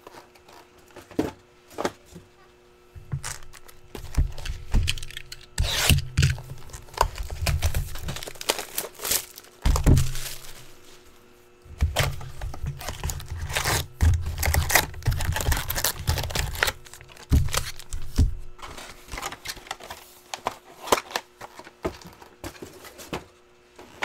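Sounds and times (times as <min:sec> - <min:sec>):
wrappers crinkling: 0:03.1 - 0:11.0, 0:12.0 - 0:22.3
cardboard and wrap tearing: 0:03.2 - 0:10.8, 0:11.9 - 0:20.0.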